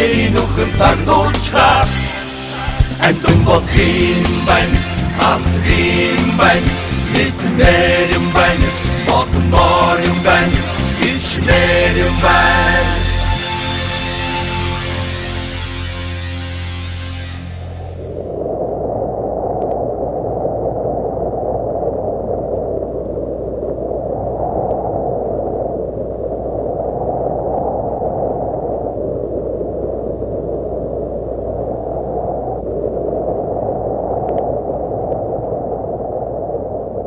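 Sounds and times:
low muffled rushing noise: 0.0s - 37.0s.

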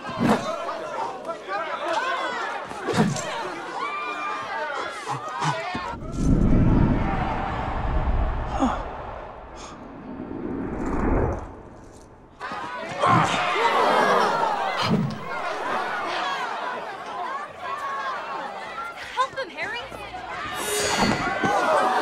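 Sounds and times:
crowd of students shouting: 0.0s - 6.1s, 12.4s - 22.0s
deep rumble: 5.9s - 12.4s.

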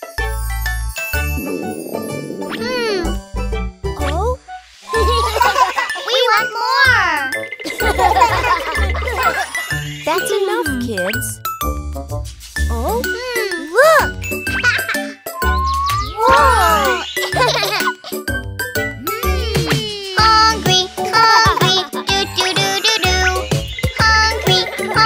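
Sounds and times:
bouncy cartoon music: 0.0s - 25.0s
pitch-gliding sound effects: 1.2s - 4.1s
swooping cartoon voices: 1.4s - 3.2s, 15.4s - 17.3s, 19.0s - 20.6s.

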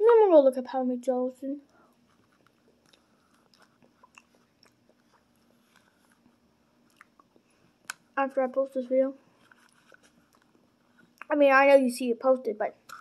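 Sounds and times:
faint eating sounds: 1.6s - 11.4s.

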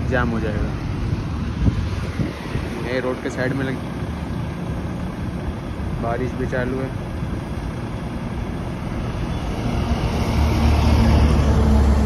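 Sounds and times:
truck diesel engine running: 0.0s - 12.0s
wind on microphone: 0.7s - 3.0s.

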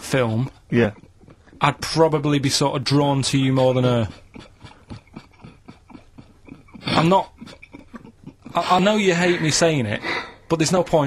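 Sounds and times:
man sniggering breathily: 4.0s - 10.5s.

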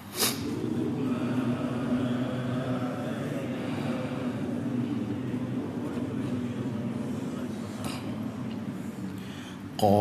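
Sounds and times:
low wavering drone: 0.4s - 10.0s.

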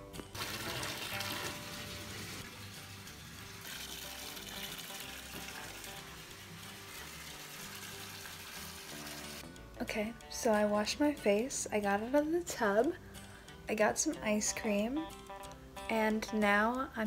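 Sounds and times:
background music: 0.0s - 17.0s
tap water filling bathtub: 0.2s - 9.4s.

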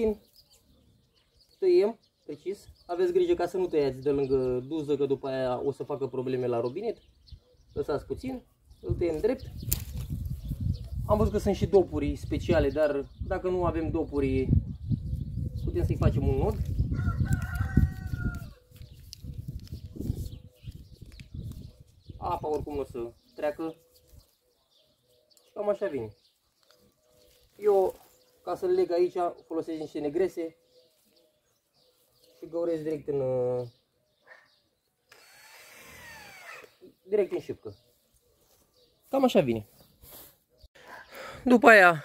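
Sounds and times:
rooster crowing: 16.9s - 18.6s
cordless drill driving screw: 35.1s - 36.8s.

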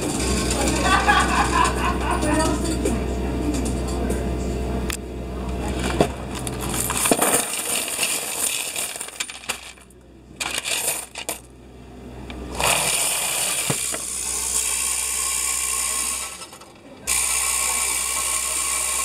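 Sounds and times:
coin-counting machine running: 0.0s - 2.9s, 6.4s - 9.8s, 12.5s - 19.0s
coins clinking: 6.3s - 11.5s
coins rattling through counter: 6.6s - 11.5s.

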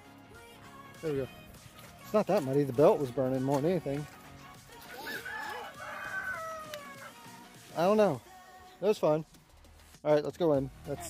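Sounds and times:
rooster crowing: 4.9s - 7.3s.

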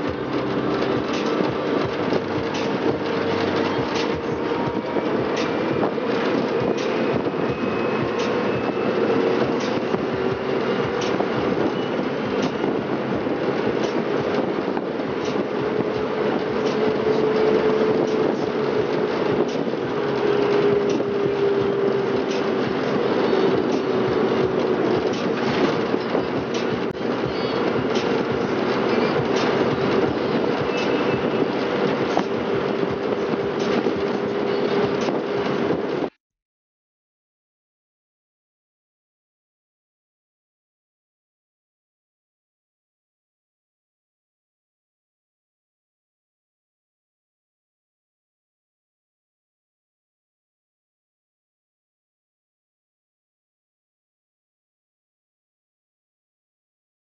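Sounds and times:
vehicle body rattles and clicks: 0.0s - 36.1s
road and wind noise: 0.0s - 36.2s.

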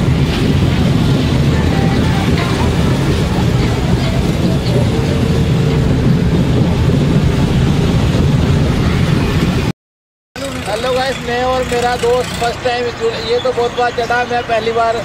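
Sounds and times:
fairground ride rumble and rush: 0.0s - 9.7s, 10.4s - 15.0s
faint voices: 1.4s - 5.8s.

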